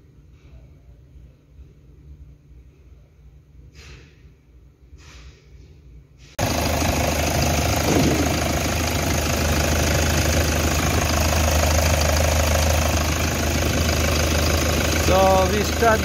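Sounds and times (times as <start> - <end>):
diesel engine idling: 6.4 - 16.0.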